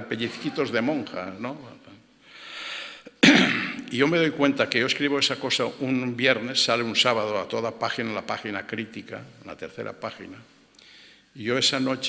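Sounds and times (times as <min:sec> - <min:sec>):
man breathing in softly: 0:02.2 - 0:03.1, 0:10.8 - 0:11.3
man clearing throat: 0:03.2 - 0:03.9.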